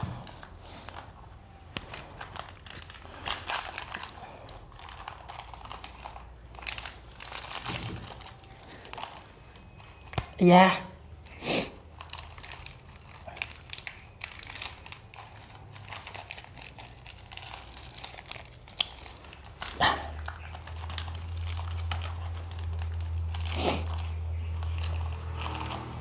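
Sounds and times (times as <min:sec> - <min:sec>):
plastic wrapping crinkling: 0:00.0 - 0:10.4, 0:11.1 - 0:26.0.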